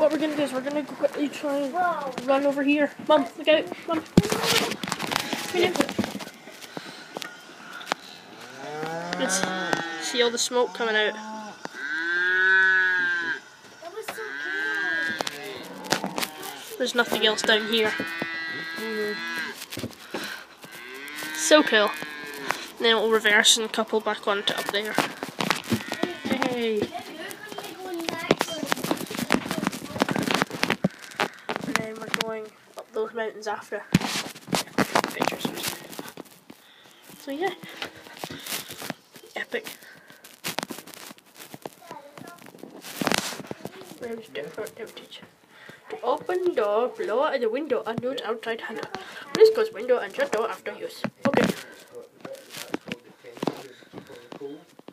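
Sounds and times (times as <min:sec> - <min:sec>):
cow mooing: 0:07.2 - 0:16.7, 0:17.3 - 0:19.6, 0:20.6 - 0:22.8.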